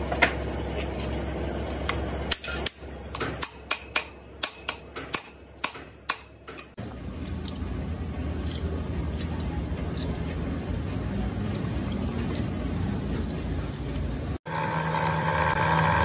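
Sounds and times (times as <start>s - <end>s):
steady low hum: 0.0s - 14.5s
metallic tool clicks and clinks: 4.4s - 10.3s, 13.2s - 14.2s.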